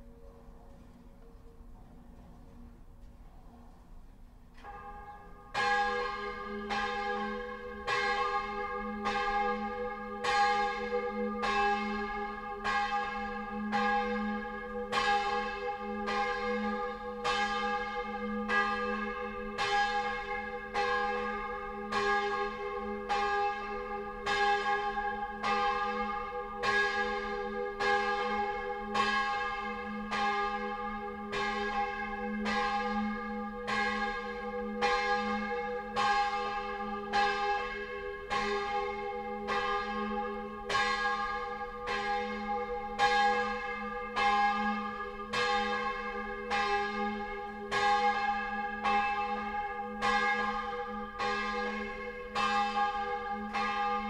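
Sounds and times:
church bell ringing: 4.6 - 54.0.

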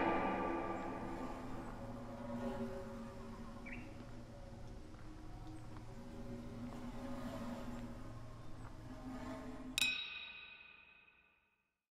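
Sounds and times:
low steady hum: 0.0 - 7.1
bird chirp: 3.6 - 4.1.

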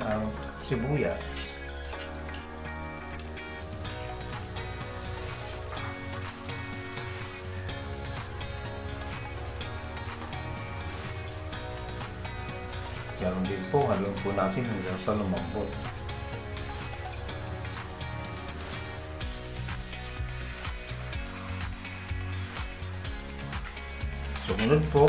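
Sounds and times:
background music of held chords: 0.0 - 25.0
onion sizzling in hot oil: 0.0 - 25.0
spatula stirring in wok: 0.3 - 13.9.

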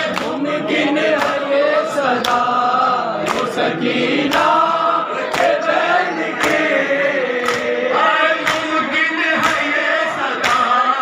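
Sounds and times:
men chanting in unison: 0.0 - 11.0
chest-beating slaps: 4.3 - 4.6, 7.4 - 7.7, 10.4 - 10.7.

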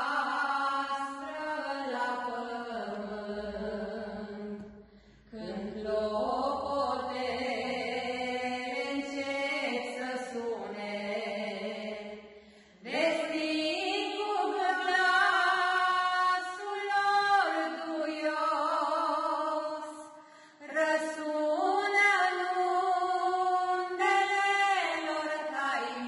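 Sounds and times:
women singing religious song: 0.0 - 26.0.

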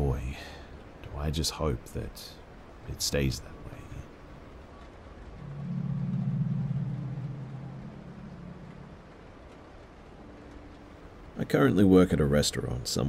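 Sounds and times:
low steady drone: 3.6 - 11.4.

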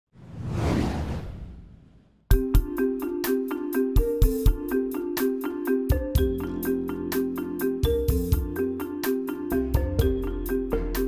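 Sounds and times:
deep whoosh: 0.2 - 2.2.

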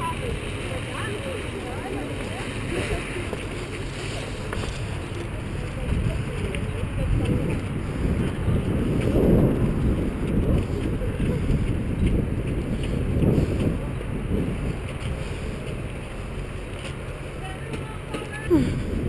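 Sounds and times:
wind rumbling on microphone: 0.0 - 19.0.

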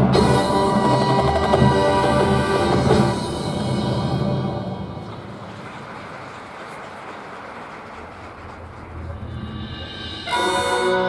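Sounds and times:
drum corps music: 0.0 - 6.3
open-air stadium ambience: 0.0 - 11.0.

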